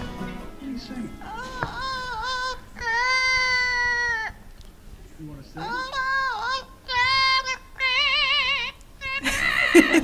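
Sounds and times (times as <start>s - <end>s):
parrot singing: 0.8s - 4.5s, 5.5s - 9.4s.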